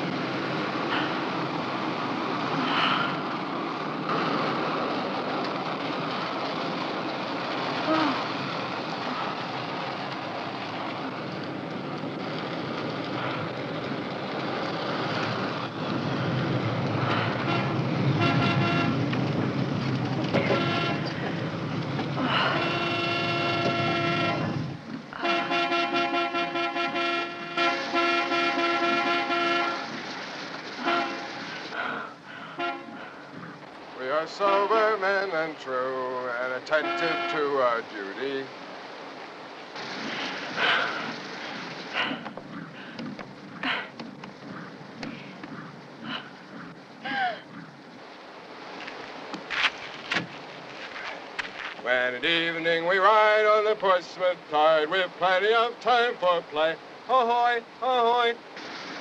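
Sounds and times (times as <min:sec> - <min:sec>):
car driving in rain: 0:00.0 - 0:59.0
vehicle horn blasts: 0:17.4 - 0:19.0, 0:20.4 - 0:21.2, 0:22.4 - 0:24.6, 0:25.2 - 0:29.9, 0:30.8 - 0:31.3, 0:32.6 - 0:33.0, 0:36.7 - 0:37.5.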